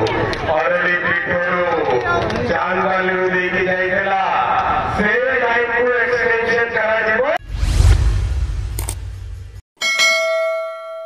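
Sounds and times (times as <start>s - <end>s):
low rumbling whoosh: 7.4s - 9.6s
bright bell ding: 9.8s - 11.0s.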